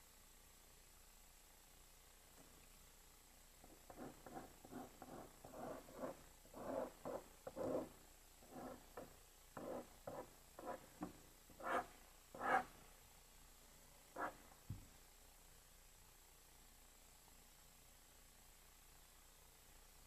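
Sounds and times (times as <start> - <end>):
pen scratching on paper: 3.6 - 12.7, 14.2 - 14.4.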